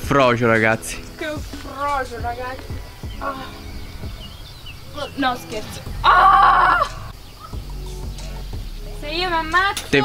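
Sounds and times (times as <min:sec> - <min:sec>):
faint bird chirps: 0:01.2 - 0:09.2
woman exclaiming: 0:06.0 - 0:07.1.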